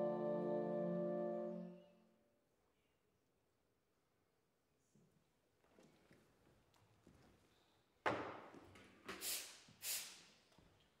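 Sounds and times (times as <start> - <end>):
breathy air bursts: 9.2 - 10.3.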